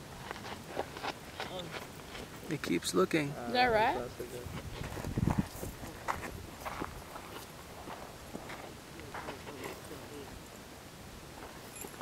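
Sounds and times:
rustling in dry grass: 3.8 - 10.3
microphone handling rumble: 4.4 - 7.1.

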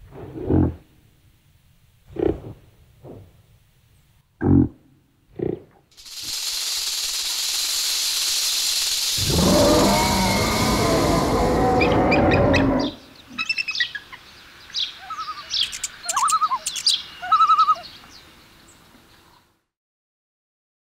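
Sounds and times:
steady hiss: 5.9 - 13.3
birds chirping: 9.1 - 19.2.

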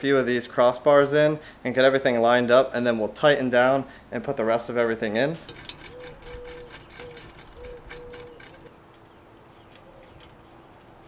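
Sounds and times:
dove cooing: 5.6 - 8.8.

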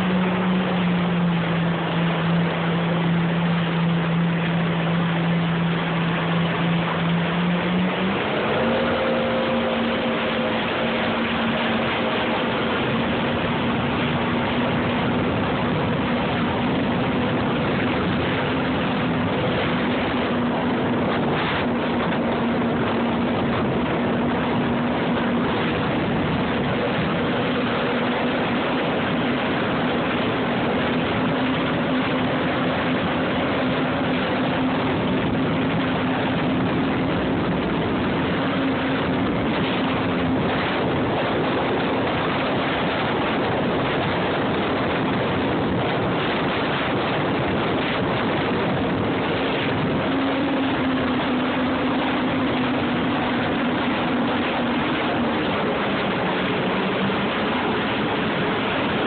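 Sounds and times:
rushing wind and water: 0.0 - 59.0
watercraft engine drone: 0.0 - 59.0.

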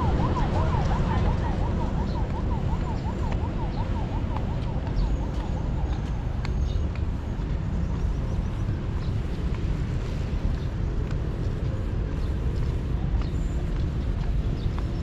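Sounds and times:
low outdoor rumble: 0.0 - 15.0
footsteps on concrete: 2.0 - 15.0.

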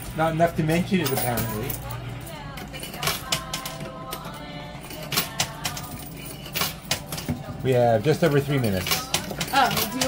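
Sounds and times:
coins clinking in machine: 0.0 - 10.0.

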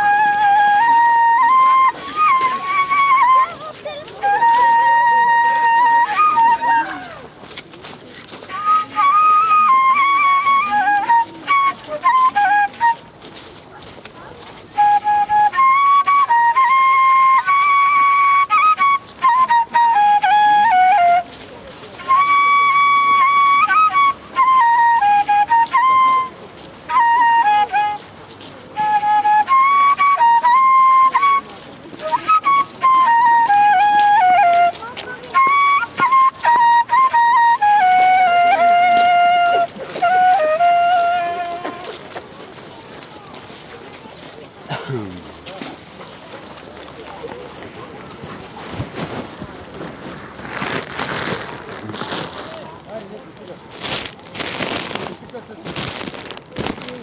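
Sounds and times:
end-blown flute melody: 0.0 - 7.3, 8.4 - 13.3, 14.7 - 42.5.

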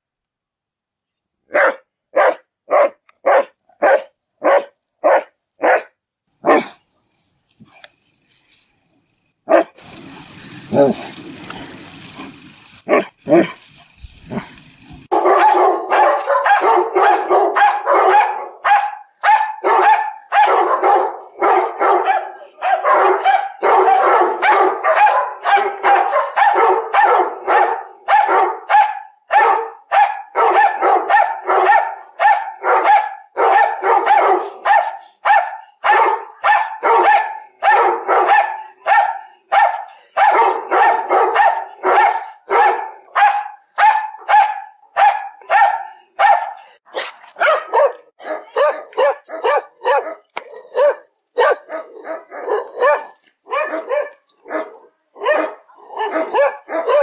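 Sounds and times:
dog barking: 1.5 - 6.8, 9.5 - 9.8, 12.9 - 13.5, 15.1 - 57.0.

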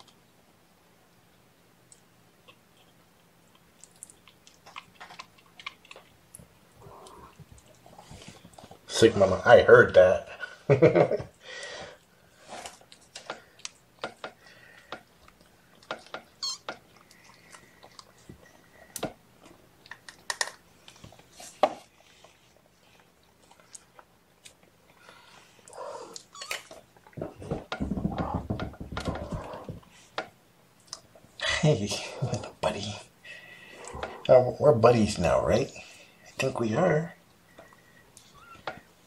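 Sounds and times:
faint cat sounds: 6.8 - 7.5.

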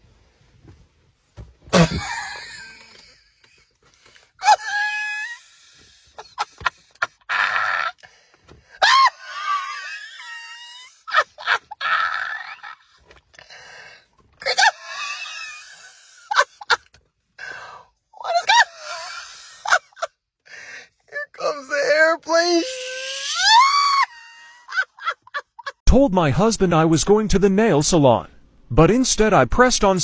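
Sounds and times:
person shrieking and gasping: 4.1 - 16.8, 17.4 - 20.9, 22.3 - 25.1.

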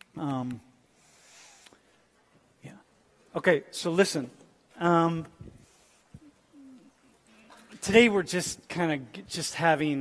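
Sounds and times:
man talking: 0.1 - 0.7, 2.6 - 5.5, 7.6 - 10.0.

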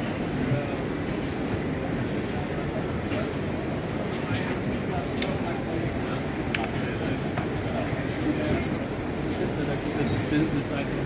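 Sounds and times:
low rumbling hall ambience: 0.0 - 11.0.

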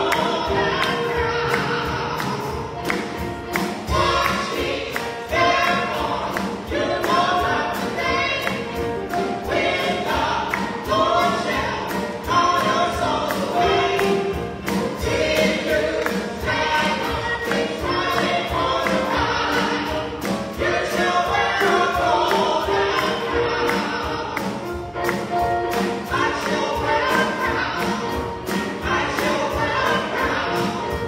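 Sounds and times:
drums: 0.0 - 31.0
vocal group singing gospel: 0.0 - 31.0.

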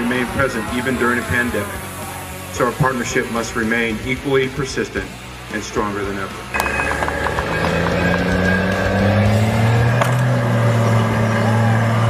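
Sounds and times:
military vehicle engine running: 6.5 - 12.0.

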